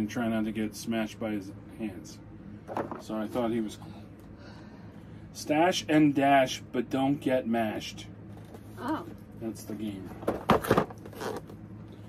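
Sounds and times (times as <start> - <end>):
cardboard box rustling and scraping: 10.2 - 11.6.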